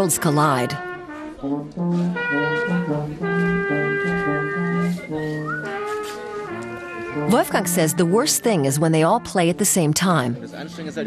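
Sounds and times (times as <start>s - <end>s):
brass instruments playing: 0.0s - 10.4s.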